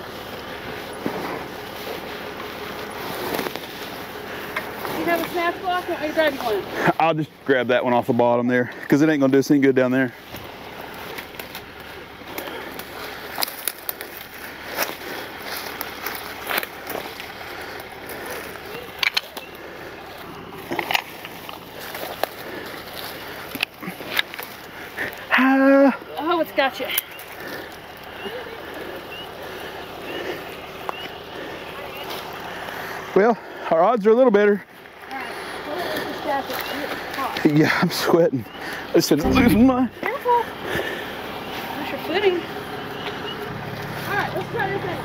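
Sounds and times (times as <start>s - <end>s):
footsteps crunching through brush: 0.0s - 6.9s, 10.2s - 25.3s
person speaking: 39.2s - 40.1s.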